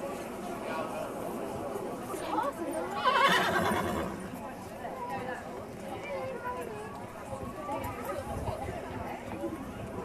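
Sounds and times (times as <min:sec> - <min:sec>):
people talking: 0:00.0 - 0:10.0
horse whinnying: 0:03.0 - 0:04.2.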